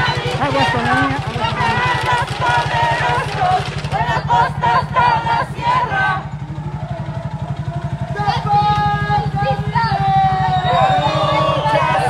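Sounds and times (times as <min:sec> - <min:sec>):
small engine running: 0:00.0 - 0:12.0.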